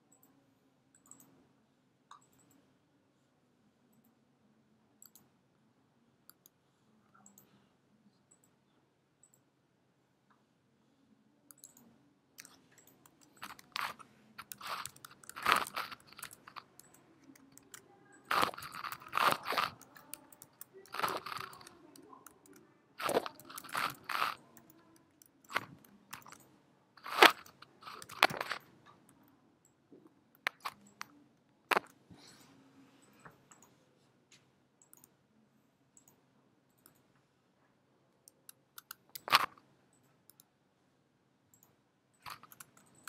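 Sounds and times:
computer keyboard typing: 1.0 - 1.3, 11.5 - 11.8, 12.4 - 28.7, 38.3 - 40.4, 41.5 - 43.0.

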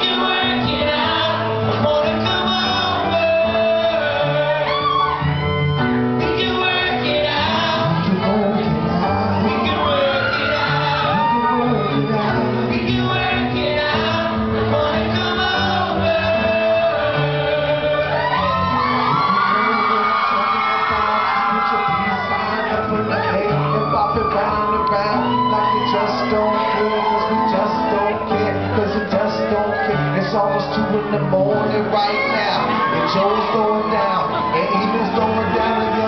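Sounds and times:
audience cheering and whooping: 0.0 - 36.0
live band music led by guitar: 0.0 - 36.0.

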